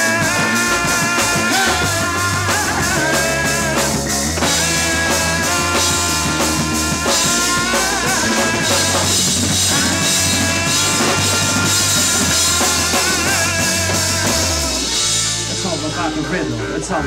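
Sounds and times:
bass guitar: 0.0 - 17.0
drum kit: 0.0 - 17.0
electric guitars bending melody: 0.0 - 17.0.

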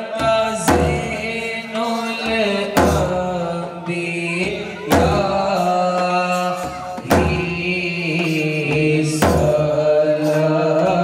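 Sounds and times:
men singing a devotional chant: 0.0 - 11.0.

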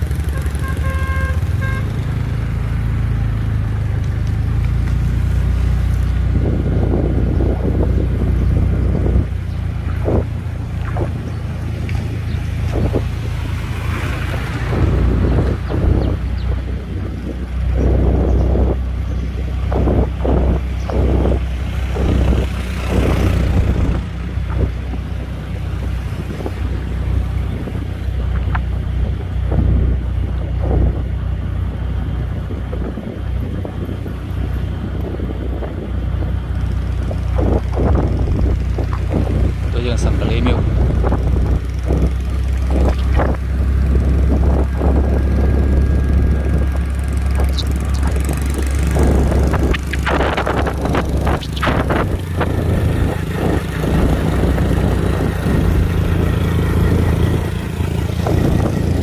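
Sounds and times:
vehicle rumble: 0.0 - 59.0
wind buffeting microphone: 0.0 - 59.0.

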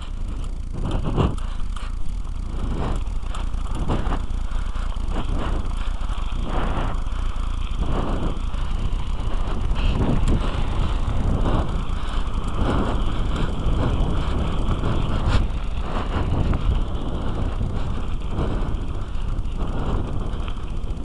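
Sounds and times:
bike tyres rolling on dirt: 0.0 - 21.0
wind on microphone: 0.0 - 21.0.

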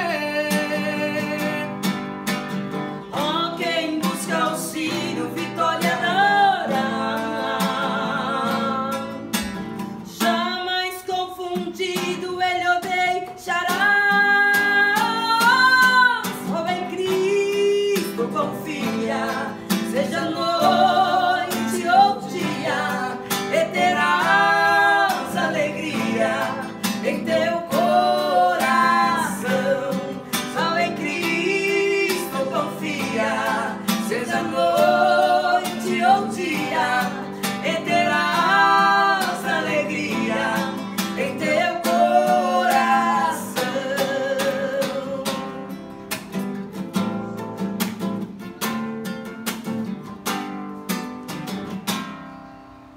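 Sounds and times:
person singing a hymn: 0.0 - 1.8, 3.1 - 9.2, 10.2 - 45.6
nylon-string guitar strumming: 14.1 - 52.9.

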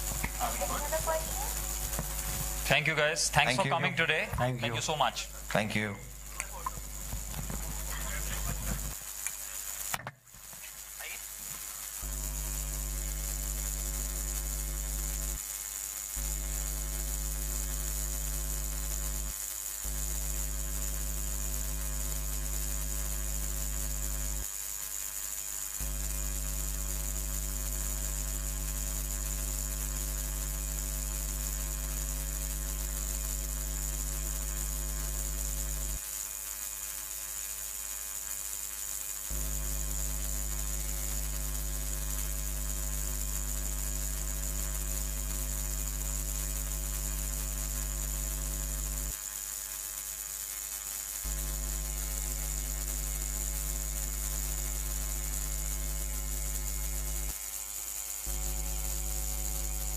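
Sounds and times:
thin high whine: 0.0 - 15.3
mains hum: 0.0 - 59.9.

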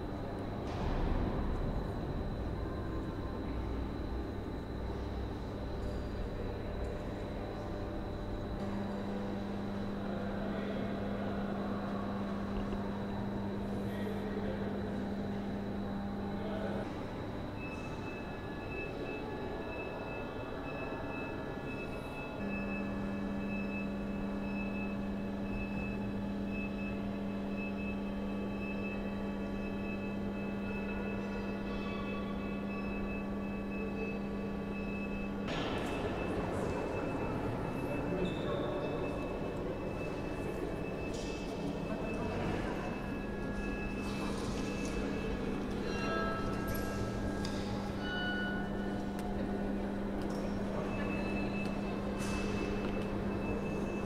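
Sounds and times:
steady mechanical hum: 0.0 - 54.0.

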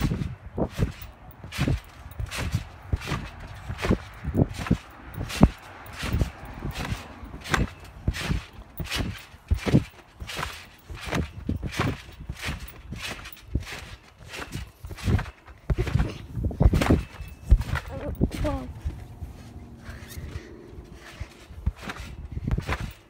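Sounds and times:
trampoline mat thumps: 0.0 - 19.0, 21.0 - 23.0.

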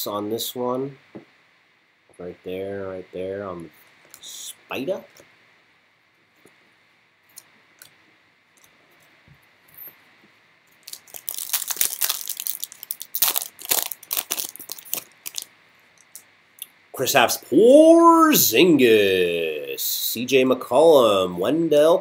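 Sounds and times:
foil wrapper crinkling: 10.8 - 15.5.

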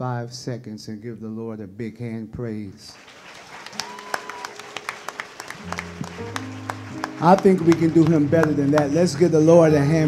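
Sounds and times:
scattered hand clapping: 3.0 - 10.0
keyboard held low chords: 5.2 - 10.0.

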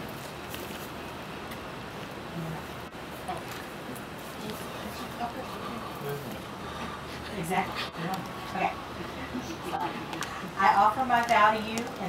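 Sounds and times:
outdoor background hiss and rumble: 0.0 - 12.0.

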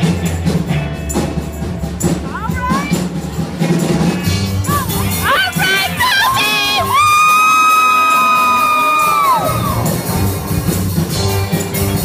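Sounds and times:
rock drums and guitars: 0.0 - 12.0.

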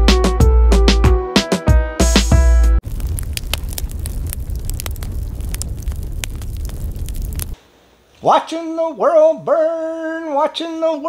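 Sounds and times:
fire burning with crackles: 2.8 - 7.6.

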